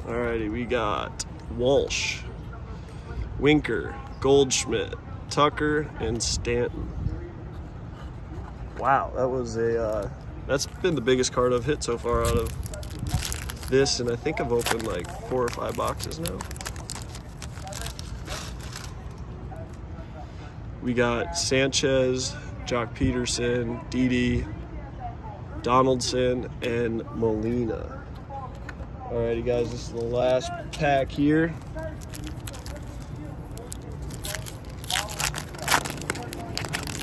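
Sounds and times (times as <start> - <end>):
cards being handled: 9.9 - 19.2, 31.1 - 37.0
foil wrapper crinkling: 9.9 - 19.2, 31.4 - 37.0.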